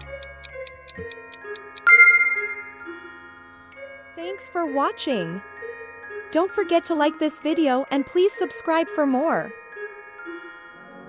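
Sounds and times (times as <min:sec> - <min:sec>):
bright bell-like chime: 0:01.9 - 0:02.7.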